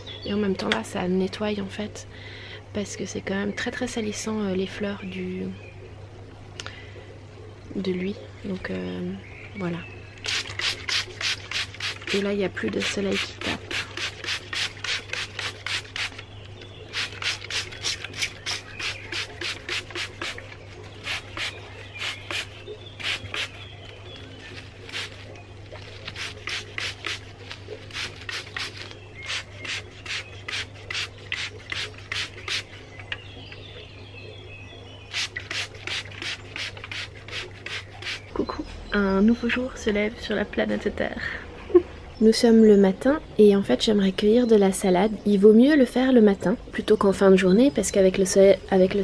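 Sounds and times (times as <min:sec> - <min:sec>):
spray bottle squirting: 0:10.2 - 0:16.2, 0:16.9 - 0:32.8, 0:35.1 - 0:38.4.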